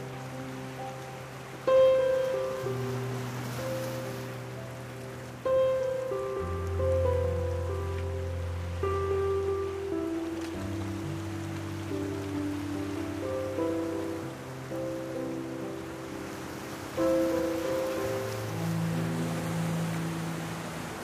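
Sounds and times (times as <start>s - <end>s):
slow calm background music: 0.0s - 21.0s.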